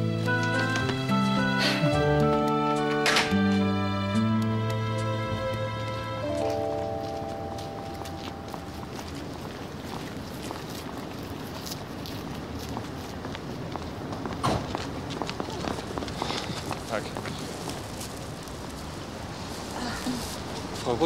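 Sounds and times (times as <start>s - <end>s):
footsteps on paving: 0.0s - 21.0s
outdoor ambience: 0.0s - 21.0s.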